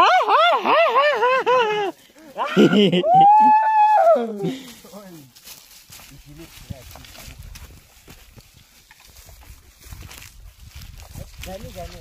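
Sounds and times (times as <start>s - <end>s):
footsteps on dry trail: 3.8s - 12.0s.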